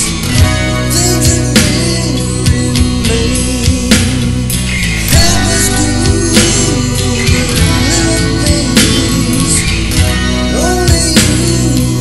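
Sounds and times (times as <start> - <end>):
rock band with guitar lead: 0.0 - 12.0.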